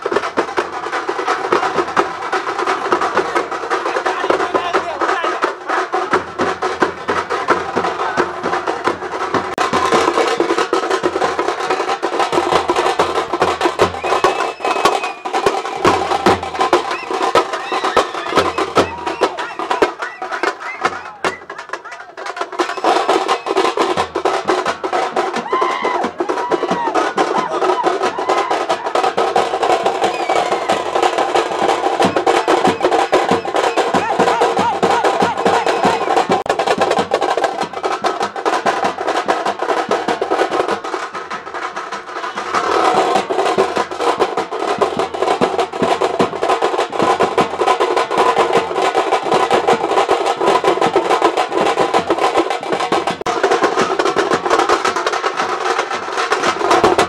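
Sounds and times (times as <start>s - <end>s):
crowd shouting: 0.0s - 44.8s
fast frame drumming: 0.0s - 57.0s.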